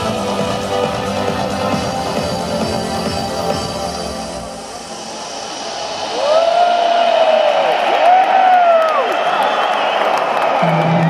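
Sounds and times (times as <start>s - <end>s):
electronic trance music: 0.0s - 8.0s
crowd noise: 0.0s - 11.0s
spectator whooping: 6.0s - 11.0s.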